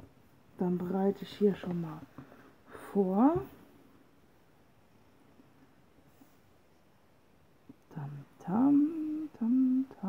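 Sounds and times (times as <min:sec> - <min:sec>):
woman humming: 0:08.0 - 0:10.0.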